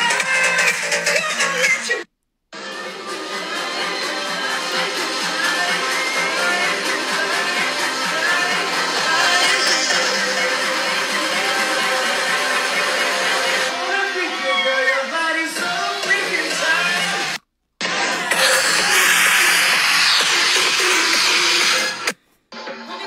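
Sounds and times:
loud dance music: 0:00.0 - 0:23.0.

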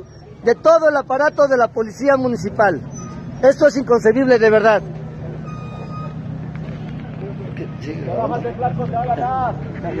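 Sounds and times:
people talking: 0:06.6 - 0:10.0.

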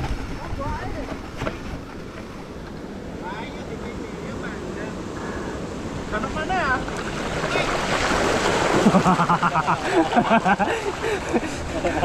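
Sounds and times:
wind rushing over microphone: 0:00.0 - 0:03.3.

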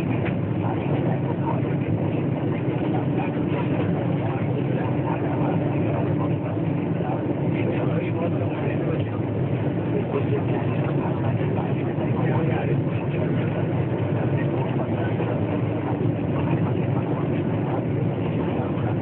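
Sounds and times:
constant low hum: 0:00.0 - 0:19.0
people's voices: 0:00.1 - 0:19.0.

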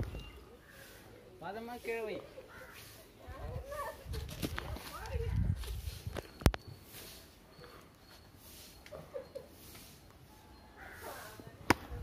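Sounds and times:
footsteps on sticks and leaves: 0:03.6 - 0:07.3.

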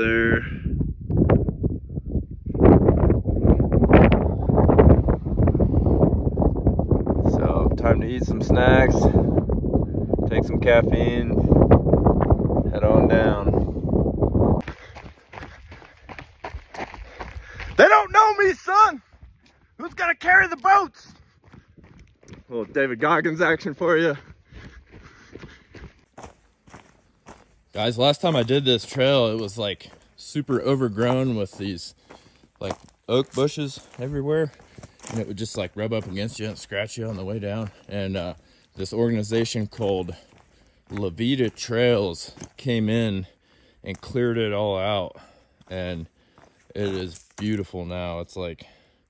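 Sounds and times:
wind buffeting microphone: 0:00.0 - 0:18.2, 0:21.1 - 0:27.4
footsteps crunching on rocky trail: 0:14.6 - 0:18.0, 0:19.0 - 0:47.7.

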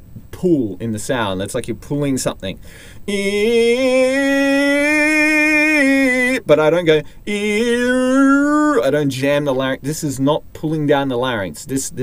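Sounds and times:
man singing a sustained vowel: 0:03.0 - 0:09.0.

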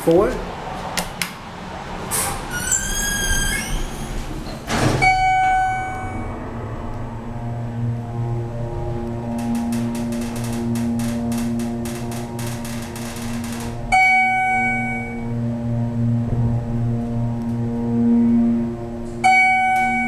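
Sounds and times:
elevator pump motor hum: 0:03.7 - 0:20.0
elevator floor chime: 0:05.0 - 0:06.5, 0:08.9 - 0:15.4, 0:19.2 - 0:20.0.

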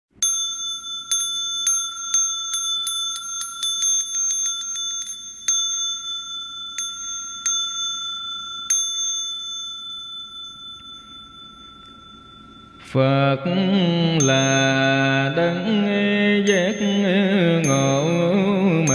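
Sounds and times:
bowl bell strikes: 0:00.1 - 0:13.0, 0:16.5 - 0:18.9.

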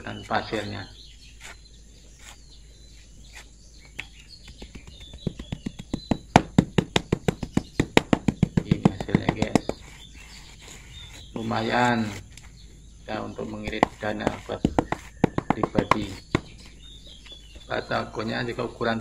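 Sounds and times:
tamping block knocking: 0:04.0 - 0:10.0, 0:13.5 - 0:16.7.

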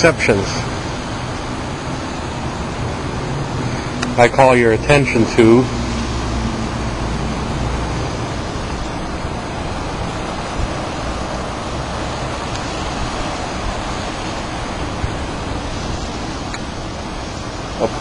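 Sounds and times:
outdoor rushing noise: 0:00.0 - 0:18.0.

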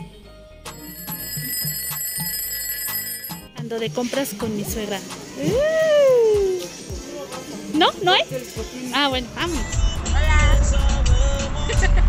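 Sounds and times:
alarm clock ringing: 0:00.7 - 0:03.5.

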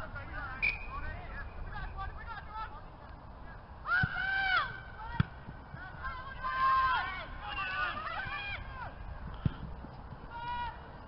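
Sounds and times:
players shouting: 0:03.8 - 0:09.6.

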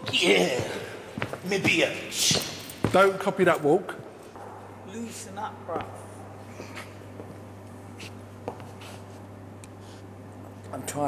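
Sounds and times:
shoes scuffing on wooden floor: 0:00.0 - 0:03.1, 0:06.8 - 0:09.2
steady low hum: 0:00.0 - 0:11.0.

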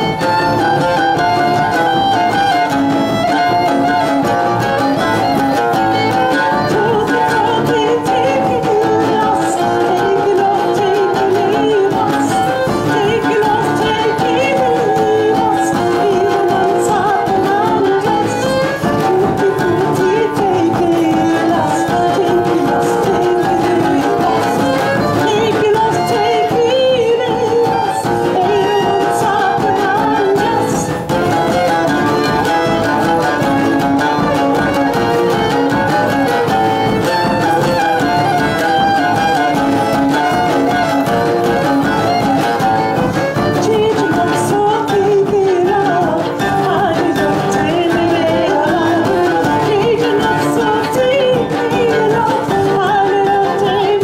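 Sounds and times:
acoustic guitar: 0:00.0 - 0:54.0
fiddle: 0:00.0 - 0:54.0
large drum beaten with stick: 0:00.0 - 0:54.0
oud: 0:00.0 - 0:54.0.

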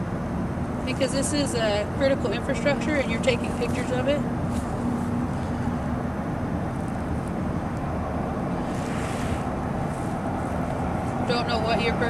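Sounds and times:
low rumbling background noise: 0:00.0 - 0:12.0
brief hissing: 0:08.6 - 0:09.5.

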